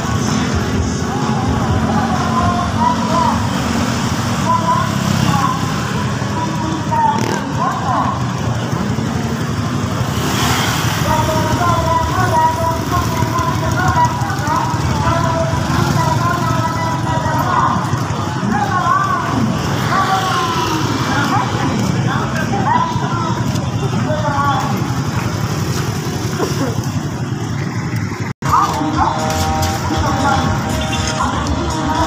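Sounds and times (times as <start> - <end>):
motorcycle engines running: 0.0 - 32.0
voices: 0.0 - 32.0.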